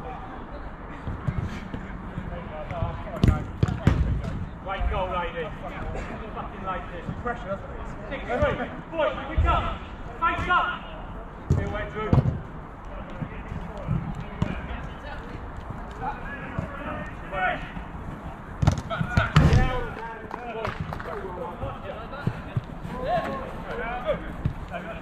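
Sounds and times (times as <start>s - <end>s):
players shouting: 16.0s - 25.0s
football thudding against boards: 18.6s - 19.9s.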